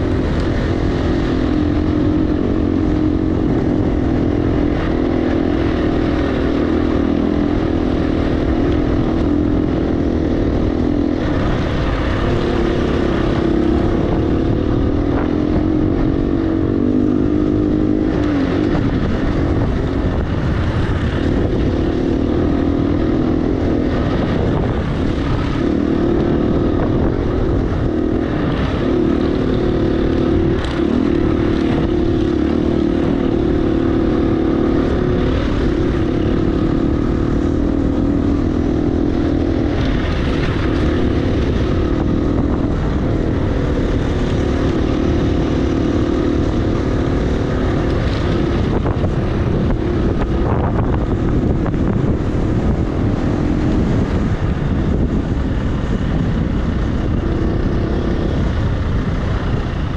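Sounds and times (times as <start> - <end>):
dirt bike engine running: 0.0 - 59.9
wind rumble on microphone: 0.0 - 59.9.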